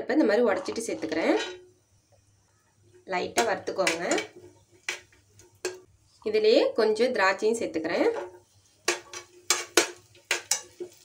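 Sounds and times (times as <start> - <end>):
metal spoon clinking against pan: 3.4 - 5.0, 8.9 - 11.0.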